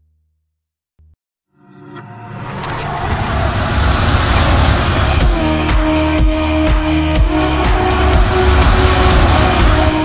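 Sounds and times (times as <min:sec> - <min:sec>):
electronic music ident: 0:01.6 - 0:10.0
whoosh of noise: 0:02.4 - 0:06.0, 0:07.4 - 0:10.0.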